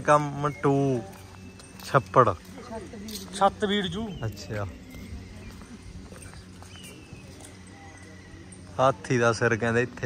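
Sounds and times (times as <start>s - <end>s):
footsteps on brick paving: 0.0s - 10.0s.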